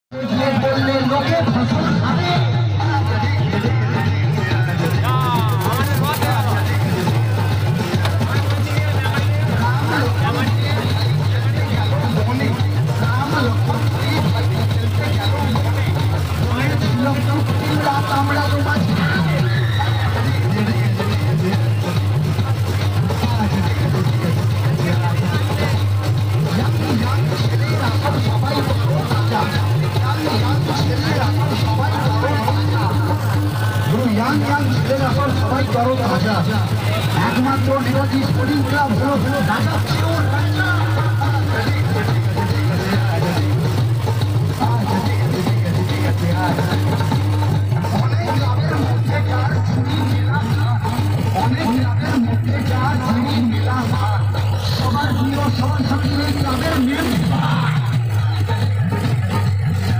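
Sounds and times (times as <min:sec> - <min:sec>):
music with singing over loudspeakers: 0:00.0 - 0:59.9
diesel generator drone: 0:04.6 - 0:59.9.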